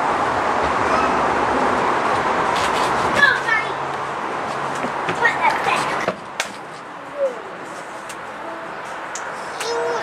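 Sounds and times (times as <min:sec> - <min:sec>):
children chattering: 0:05.1 - 0:06.1, 0:08.5 - 0:10.0.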